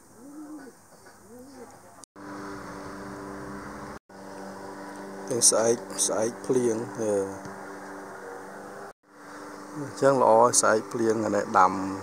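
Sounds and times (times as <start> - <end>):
dove cooing: 0.0 - 1.7
steady hum: 2.2 - 12.0.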